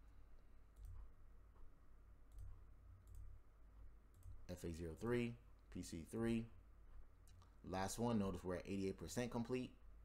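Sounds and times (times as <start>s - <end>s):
low steady hum: 0.0s - 10.0s
computer mouse clicks: 0.7s - 1.1s, 2.3s - 3.4s, 4.1s - 4.4s.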